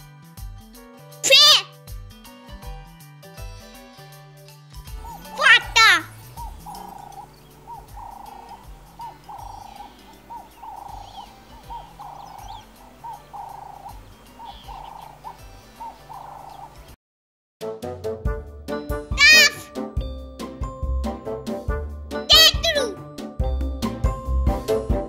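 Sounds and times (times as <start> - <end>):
dove cooing: 4.9 - 16.9.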